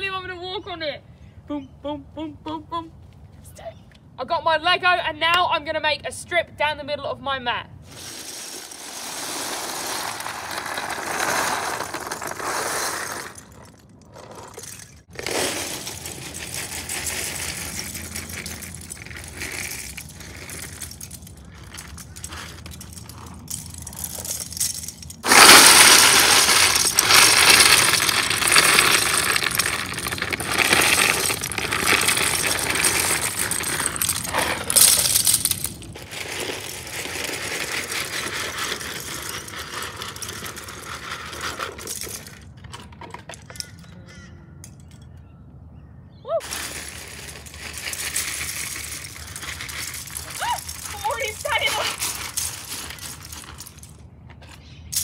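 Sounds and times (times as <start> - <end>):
plastic bricks clattering onto pile: 7.9 - 43.8, 46.4 - 54.0.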